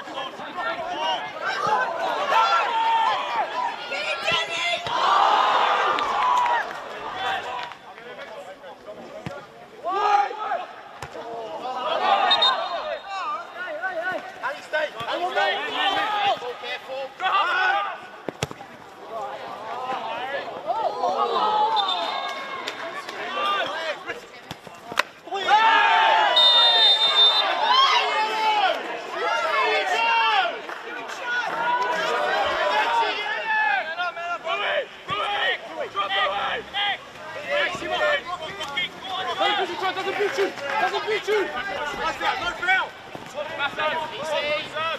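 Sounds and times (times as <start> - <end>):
players shouting: 0.0 - 44.9
sharp ball kicks: 18.3 - 18.7.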